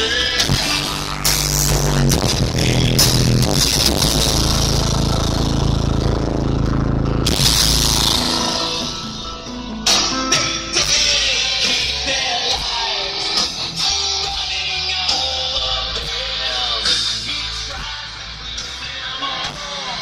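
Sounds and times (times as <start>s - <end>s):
loud bass-heavy music: 0.0s - 20.0s.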